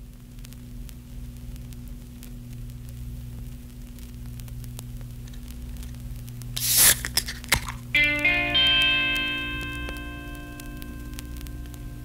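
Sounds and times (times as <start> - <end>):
crackle and clicks: 0.0 - 12.0
faint hiss: 0.0 - 12.0
low electrical hum: 0.0 - 12.0.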